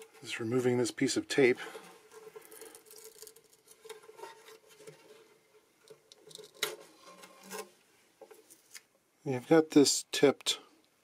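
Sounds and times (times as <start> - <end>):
hands rustling inside mandolin: 1.4 - 8.9
tape peeling: 2.4 - 5.0.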